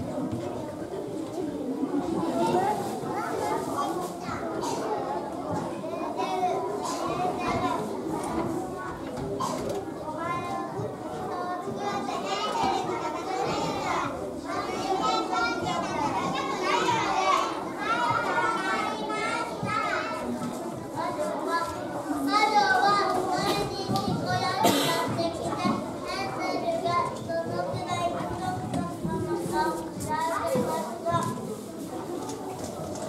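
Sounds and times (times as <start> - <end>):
young children talking and calling out: 0.0 - 33.0.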